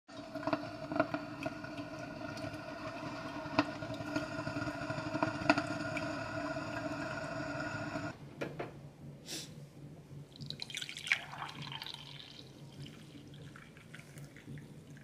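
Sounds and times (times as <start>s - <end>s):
coffee maker droning with sputters: 0.1s - 8.2s, 10.3s - 15.0s.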